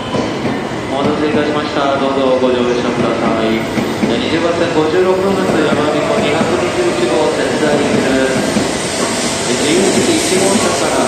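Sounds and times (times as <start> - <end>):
train starting to move: 0.0 - 11.0
platform announcements: 0.9 - 8.7
voices: 0.9 - 8.7, 9.5 - 11.0.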